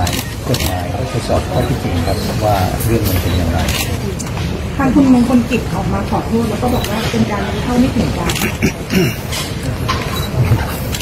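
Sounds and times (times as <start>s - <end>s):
man speaking: 0.0s - 4.0s.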